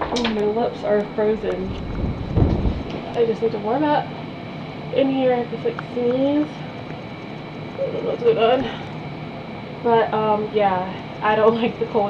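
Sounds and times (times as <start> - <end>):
woman speaking: 0.0 - 1.8, 2.9 - 4.2, 4.9 - 6.7, 7.8 - 8.8, 9.8 - 12.0.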